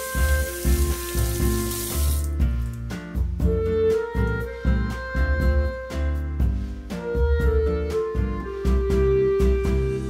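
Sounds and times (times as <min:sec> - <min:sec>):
water splashing into sink drain: 0:00.0 - 0:02.8
background music: 0:00.0 - 0:10.0.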